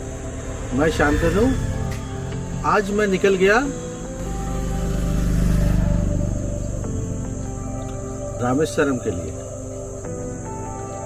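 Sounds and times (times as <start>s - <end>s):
low pulsing rumble: 0.0s - 8.6s
high insect buzzing: 0.0s - 11.0s.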